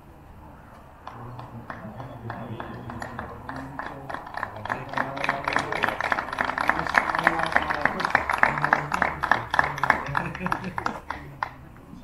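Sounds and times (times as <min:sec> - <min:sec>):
voices: 0:00.0 - 0:12.0
hand clapping: 0:01.0 - 0:11.6.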